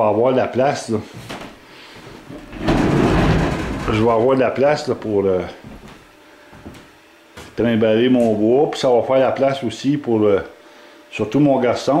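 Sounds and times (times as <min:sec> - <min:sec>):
rough scraping: 0:02.4 - 0:04.2.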